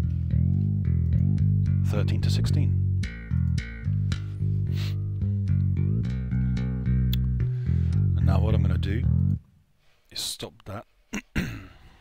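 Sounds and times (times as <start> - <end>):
electric bass line: 0.0 - 9.6.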